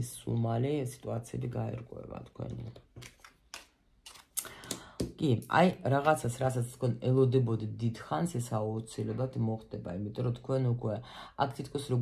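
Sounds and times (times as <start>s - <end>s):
card rustle: 2.8s - 4.6s.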